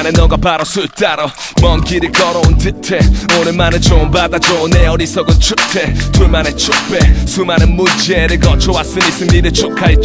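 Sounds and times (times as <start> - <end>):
man rapping over a beat: 0.0 - 10.0
heavy kick drum: 1.6 - 5.5, 6.2 - 6.4, 7.0 - 7.8, 8.4 - 10.0.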